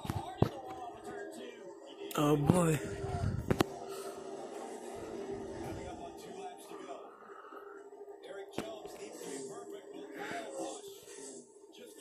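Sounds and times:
commentators talking: 2.0s - 4.0s.

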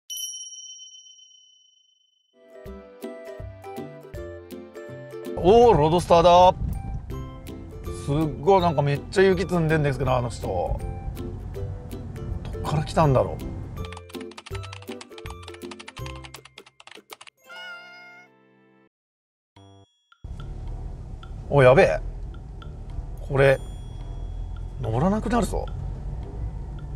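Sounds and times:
high bell-like ding: 0.1s - 2.2s, 23.2s - 24.9s
intro music with low bass: 5.8s - 13.8s, 20.3s - 26.9s
keyboard typing clicks: 13.8s - 17.3s.

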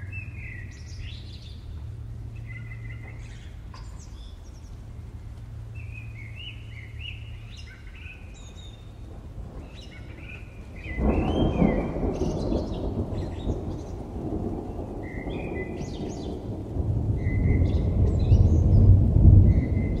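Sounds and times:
birds chirping: 0.0s - 20.0s
low rumble: 8.6s - 20.0s.

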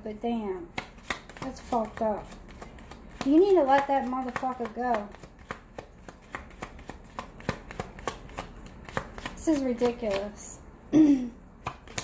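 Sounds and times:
cards being shuffled by hand: 0.7s - 10.4s.

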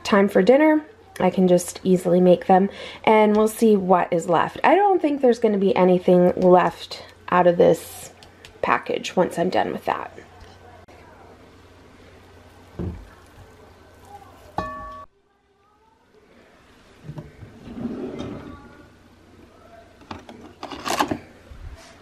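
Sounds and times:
drawer sliding open: 17.1s - 18.6s.

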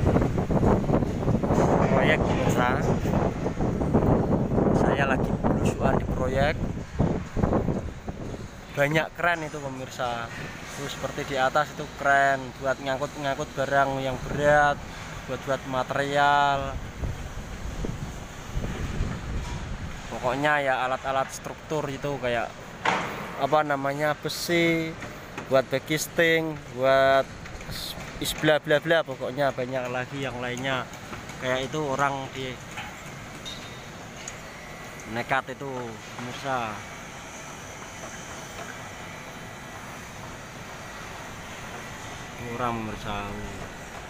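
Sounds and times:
wind buffeting microphone: 0.0s - 9.2s, 16.6s - 20.2s
machine and city hum: 0.0s - 44.0s.

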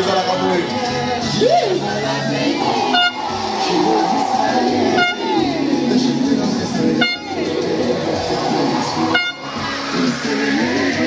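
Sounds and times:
music with singing: 0.0s - 11.0s
party horn toot: 2.8s - 3.4s, 4.9s - 5.5s, 6.9s - 7.6s, 9.1s - 9.6s.

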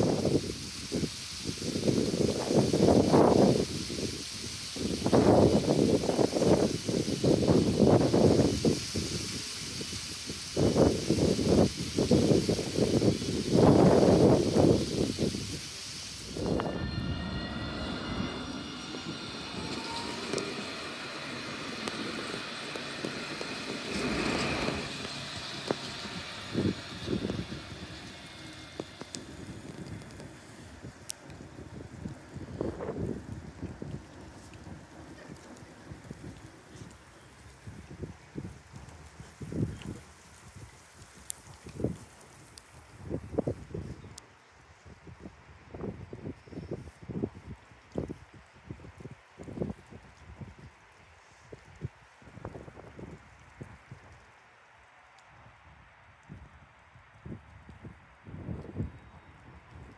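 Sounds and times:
wind buffeting microphone: 0.0s - 44.2s
tram motor whine: 13.2s - 37.9s.

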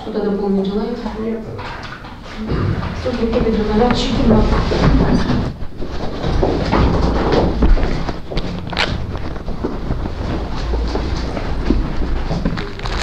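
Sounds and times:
rustling and handling: 3.0s - 13.0s.

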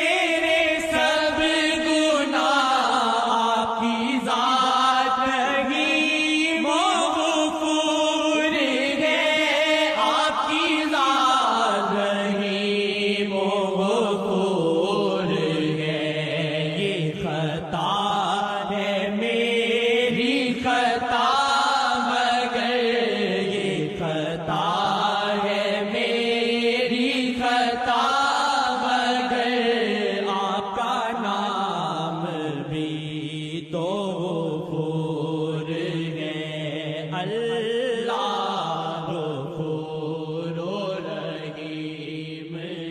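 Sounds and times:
person chanting devotional song: 0.0s - 42.9s.

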